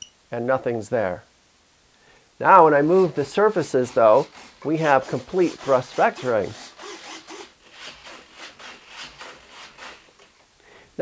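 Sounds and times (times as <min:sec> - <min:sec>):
quiet rubbing strokes: 0:02.5 - 0:07.1.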